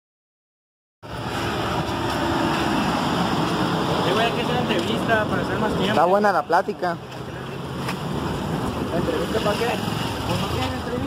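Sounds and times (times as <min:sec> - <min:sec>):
street and wind noise hiss: 0:01.0 - 0:11.0.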